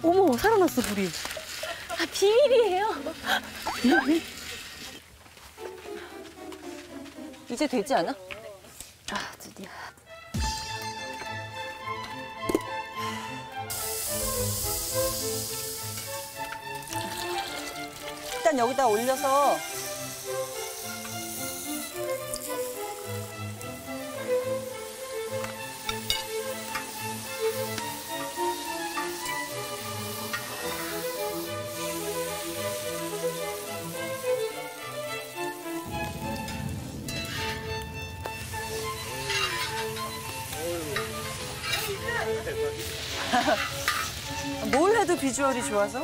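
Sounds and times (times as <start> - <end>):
bread sizzling in pan: 0.0 - 5.0, 13.7 - 46.0
background music: 5.4 - 46.0.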